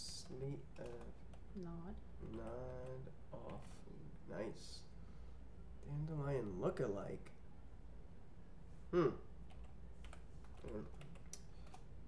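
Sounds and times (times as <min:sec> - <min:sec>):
computer keyboard keystrokes: 0:00.8 - 0:01.5, 0:02.3 - 0:03.6, 0:09.5 - 0:11.9.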